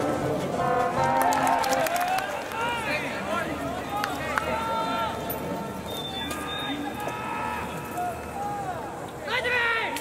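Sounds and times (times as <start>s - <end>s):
people shouting: 6.7s - 9.9s.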